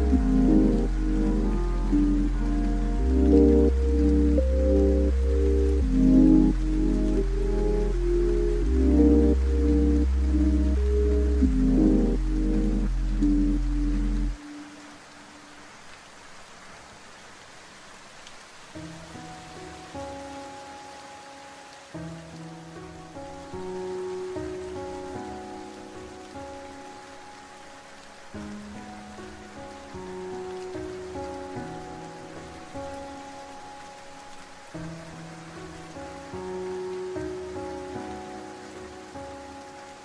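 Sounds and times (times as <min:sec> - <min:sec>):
lofi music with bass line: 0:00.0 - 0:14.4
steady rain falling: 0:00.0 - 0:40.0.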